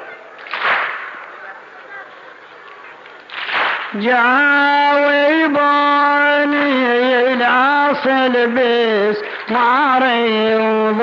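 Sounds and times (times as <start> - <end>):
many hands slapping chests: 0.4 - 1.5, 2.6 - 4.0.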